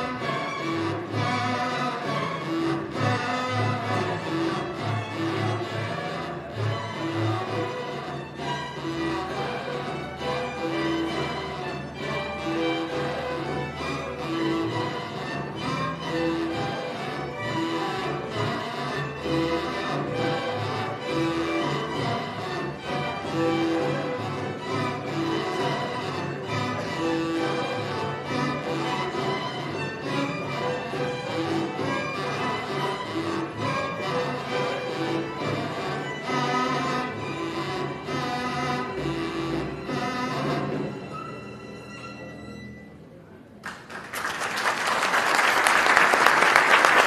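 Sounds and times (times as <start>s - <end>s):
string orchestra playing folk music: 0.0s - 44.1s, 44.9s - 47.0s.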